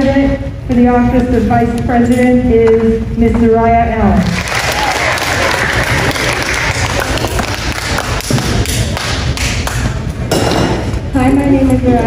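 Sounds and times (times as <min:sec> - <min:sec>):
audience applauding: 0:04.4 - 0:09.9.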